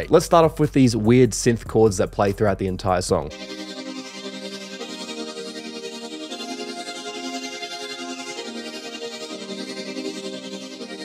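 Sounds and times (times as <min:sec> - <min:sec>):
wavering synth pad chords: 0:03.3 - 0:11.0.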